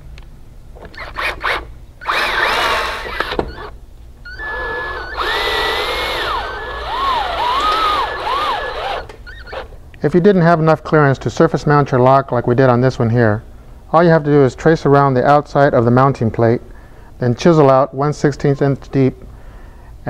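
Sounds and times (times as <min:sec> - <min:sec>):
cordless drill driving screws: 0:00.9 - 0:09.7.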